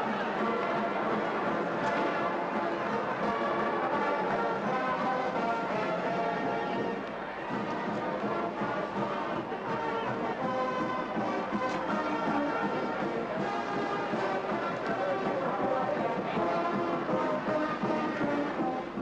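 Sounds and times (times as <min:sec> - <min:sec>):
brass band playing: 0:07.8 - 0:18.9.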